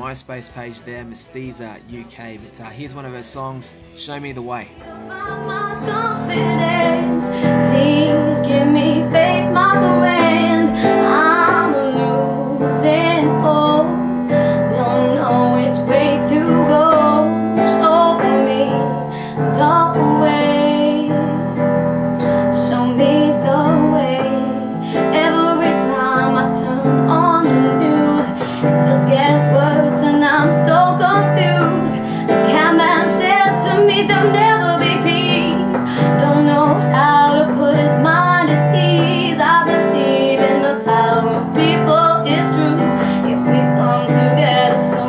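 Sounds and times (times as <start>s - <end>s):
piano chords: 0.0s - 45.0s
woman singing: 4.8s - 45.0s.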